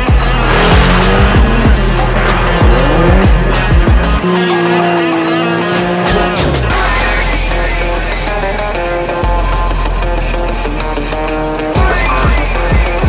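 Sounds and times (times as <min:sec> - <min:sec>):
car engine revving hard: 0:00.0 - 0:09.3
loud background music: 0:00.0 - 0:13.0.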